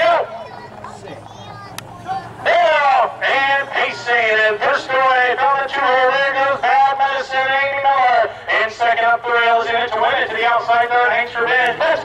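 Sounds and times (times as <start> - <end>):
man calling a race: 0.0 - 12.0.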